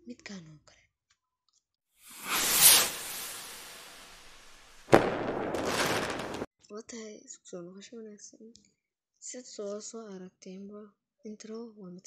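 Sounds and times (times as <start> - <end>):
sharp explosive hit: 2.1 - 6.5
whoosh: 2.1 - 6.5.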